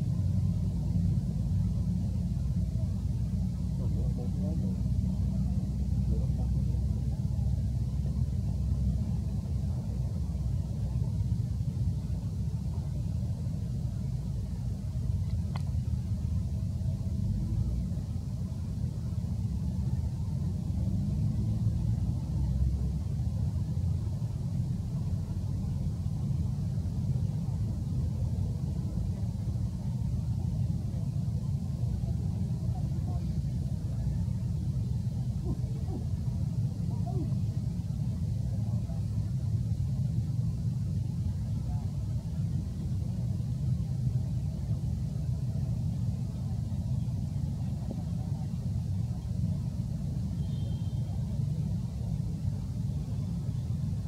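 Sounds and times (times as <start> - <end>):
faint distant voices: 0.0 - 54.0
low outdoor rumble: 0.0 - 54.0.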